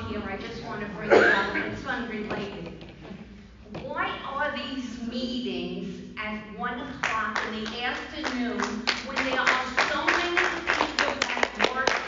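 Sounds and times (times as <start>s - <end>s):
scattered hand claps: 7.0s - 12.0s.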